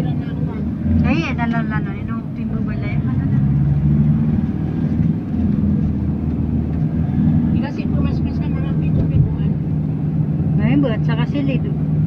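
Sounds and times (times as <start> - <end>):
vehicle engine and road drone: 0.0 - 12.0.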